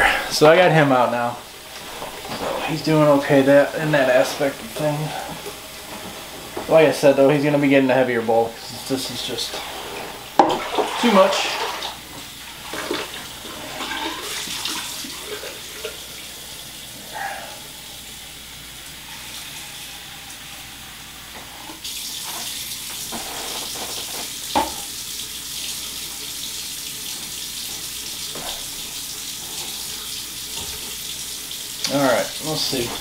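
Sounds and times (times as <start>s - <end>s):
water running from a tap: 0.0s - 33.0s.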